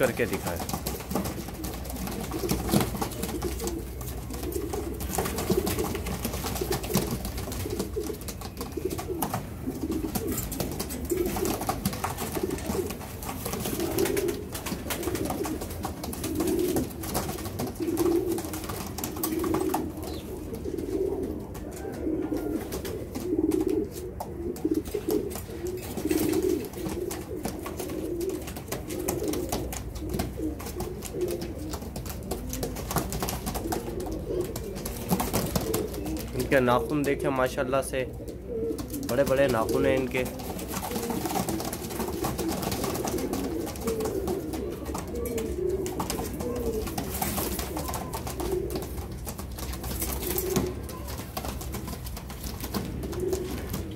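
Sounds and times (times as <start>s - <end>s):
pigeons cooing: 0.0s - 53.9s.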